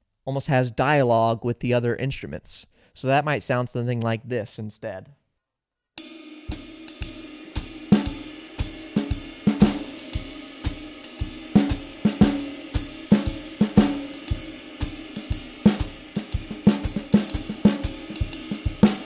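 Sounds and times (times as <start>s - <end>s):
drum kit swing groove: 6.5s - 19.0s.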